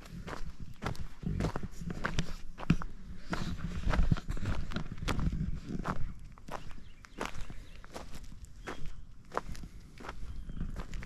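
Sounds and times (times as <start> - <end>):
footsteps crunching on stone chips: 0.0 - 11.0.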